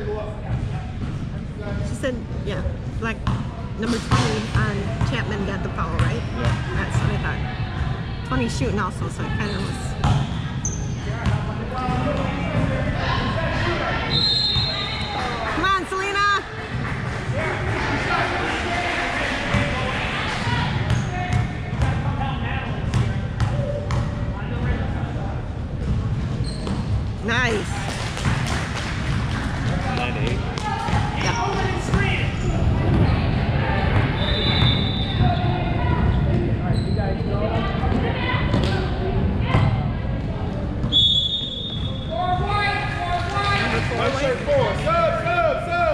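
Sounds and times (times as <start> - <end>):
spectators' voices echoing: 0.0 - 45.9
basketball bouncing on court: 3.2 - 7.2, 9.9 - 12.7, 20.8 - 22.0, 22.9 - 24.2.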